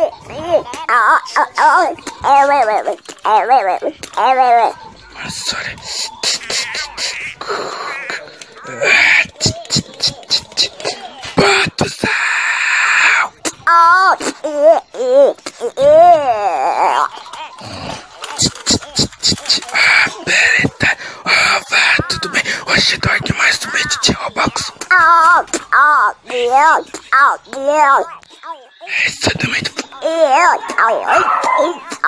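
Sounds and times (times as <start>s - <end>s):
person making wailing play noises: 5.5s - 13.8s
toys clicking and knocking: 8.0s - 11.9s, 17.2s - 20.8s.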